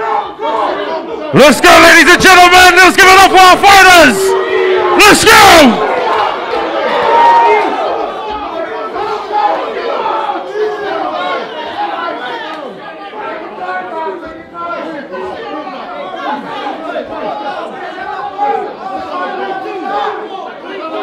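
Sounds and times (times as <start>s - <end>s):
crowd chattering and shouting: 0.0s - 21.0s.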